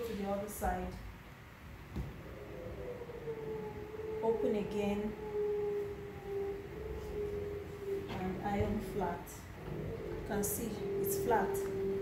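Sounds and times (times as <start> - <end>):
low background rumble: 0.0 - 12.0
steady mid-pitched hum: 0.0 - 12.0.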